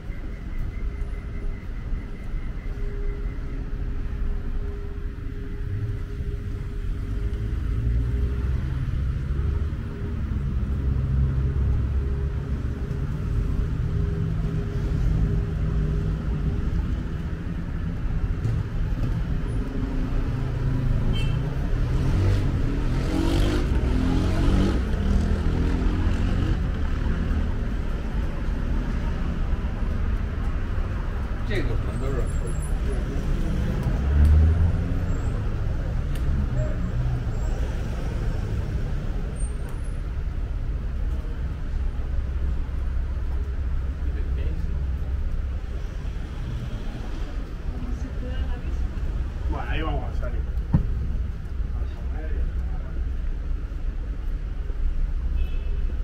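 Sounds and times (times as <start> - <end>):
road traffic rumble: 0.0 - 56.0
nearby vehicle passing: 21.7 - 27.5, 31.6 - 39.4.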